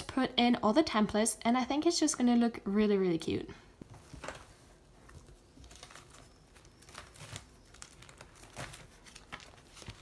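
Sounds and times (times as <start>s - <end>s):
plastic pages crinkling: 3.9s - 10.0s.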